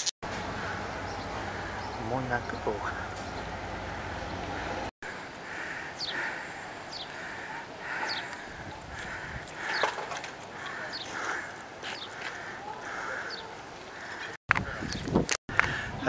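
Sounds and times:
steady pulsing bird call: 0.3s - 15.0s.

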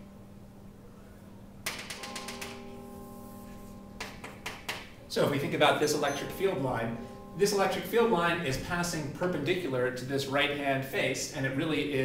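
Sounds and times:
steady hum: 0.0s - 12.0s
chalk tapping on a chalkboard: 4.0s - 4.9s.

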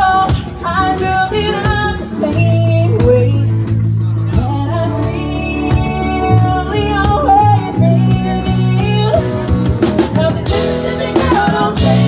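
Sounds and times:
women singing: 0.0s - 3.4s, 4.4s - 12.0s
country band playing: 0.0s - 12.0s.

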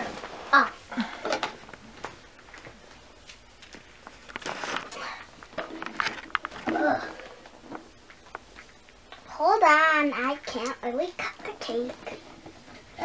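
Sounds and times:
soft child's voice: 0.5s - 0.8s, 9.3s - 12.3s.

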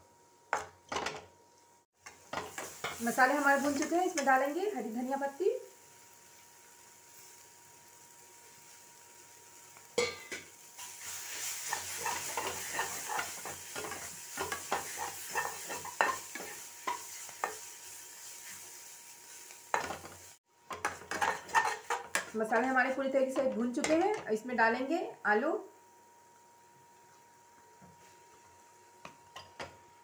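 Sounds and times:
masala sizzling in a pan: 0.0s - 30.0s
spatula scraping and knocking pan: 11.3s - 17.7s, 19.7s - 24.3s.

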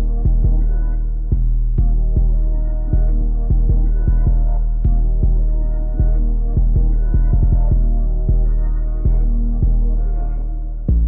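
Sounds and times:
deep bass hits: 0.0s - 11.0s
synth melody: 0.0s - 11.0s.

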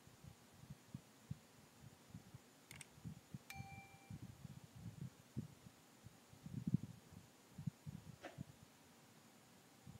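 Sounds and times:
sharp click: 2.7s - 2.9s
two-note chime: 3.5s - 4.2s.

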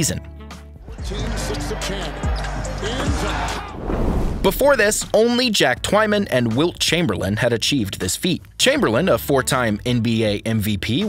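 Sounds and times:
background music: 0.0s - 11.0s
arena crowd noise: 0.9s - 3.9s.

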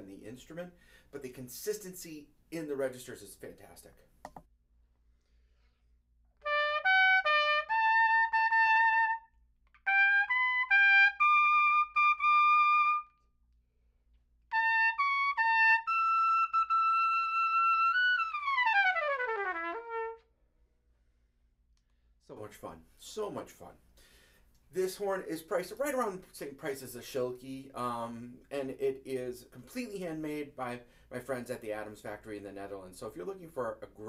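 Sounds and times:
piccolo trumpet solo: 6.4s - 13.3s, 14.5s - 20.3s.

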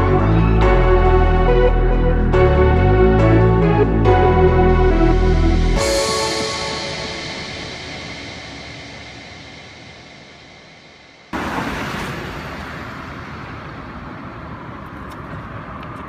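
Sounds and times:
background music: 0.0s - 11.4s
road traffic noise: 0.0s - 16.0s
hiss: 5.8s - 14.2s.

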